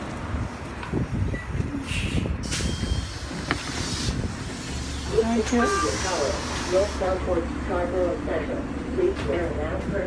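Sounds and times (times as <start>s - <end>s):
bus engine idling: 0.0s - 10.0s
air brake hiss: 1.8s - 4.9s, 5.7s - 7.0s.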